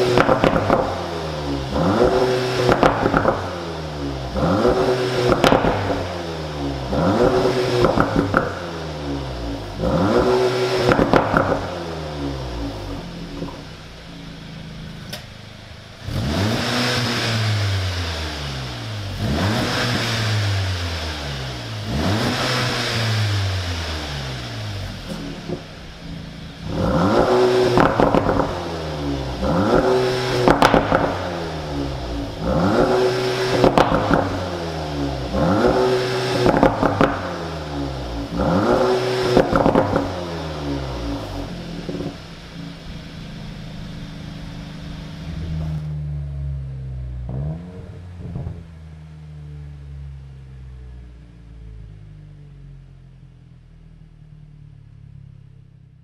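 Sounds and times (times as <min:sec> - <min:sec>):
exhaust cracks: 0:00.0 - 0:52.5
car engine revving: 0:00.0 - 0:55.8.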